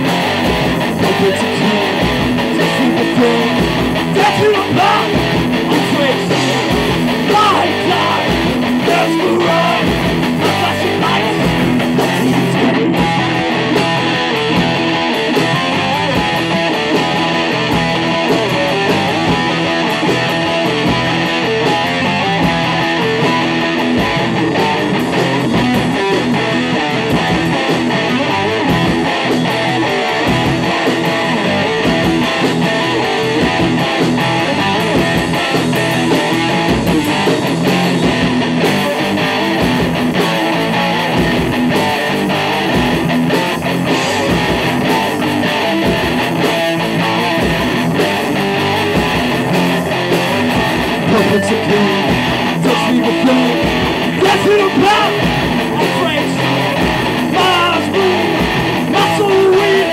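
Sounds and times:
bass guitar: 0.0 - 59.9
drums: 0.0 - 59.9
electric guitar: 0.0 - 59.9.

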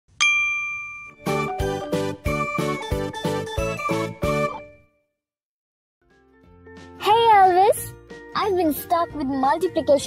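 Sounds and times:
bright chime ringing: 0.2 - 1.5
jingly music with a beat: 0.4 - 4.8.

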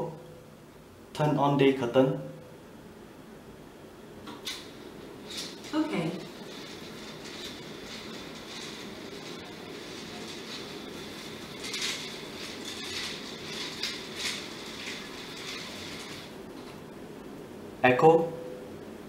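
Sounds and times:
curtain motor whirring: 4.2 - 17.4
clicking from curtain track: 4.3 - 5.8, 6.5 - 16.8.

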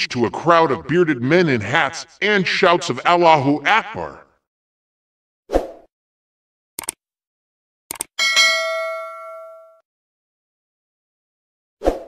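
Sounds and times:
bright bell ding: 8.2 - 9.8.

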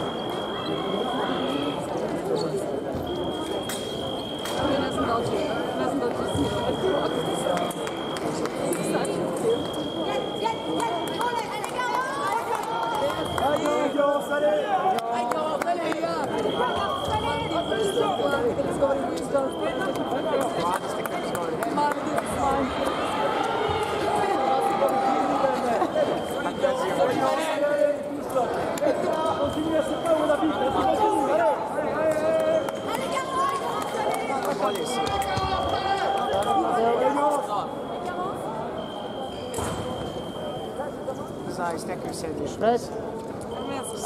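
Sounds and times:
chatter in a large hall: 0.0 - 44.0
high electronic beep: 3.0 - 5.4, 6.2 - 8.2, 16.1 - 21.4, 25.8 - 27.2, 35.6 - 41.6, 43.5 - 44.0.

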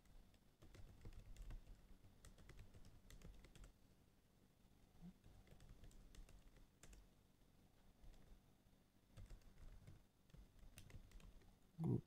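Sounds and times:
computer keyboard typing: 0.1 - 3.8, 5.2 - 7.0, 9.1 - 11.5.

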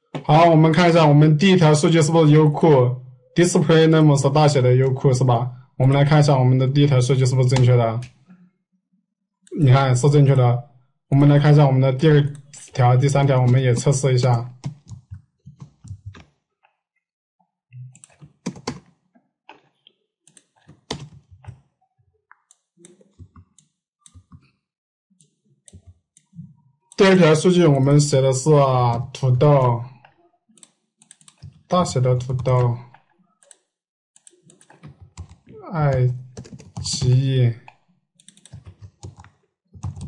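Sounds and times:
computer keyboard typing: 13.2 - 16.3, 17.9 - 19.0, 20.3 - 21.7, 25.7 - 26.4, 30.6 - 32.8, 34.2 - 37.2, 38.2 - 40.0.

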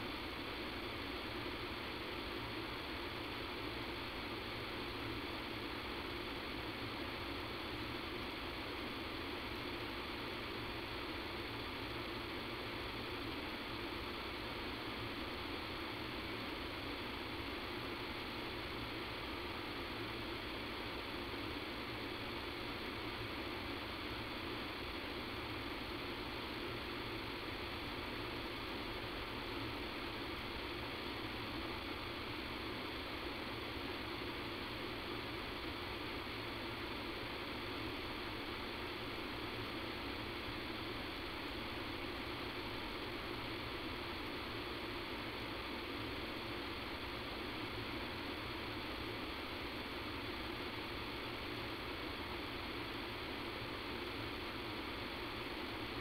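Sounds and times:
phone line hiss and hum: 0.0 - 56.0.

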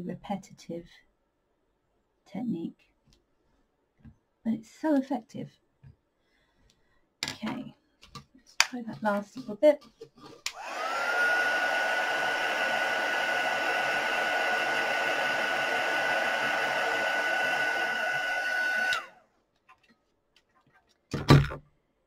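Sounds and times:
hot-air tool fan whine: 10.5 - 19.2.

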